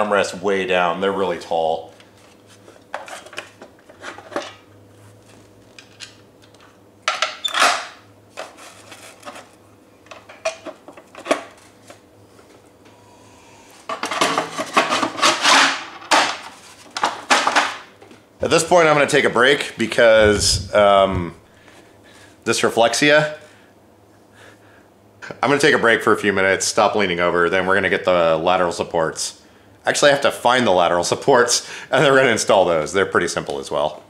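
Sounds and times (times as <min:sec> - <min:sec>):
plastic and metal parts clattering: 0:13.9 - 0:17.8.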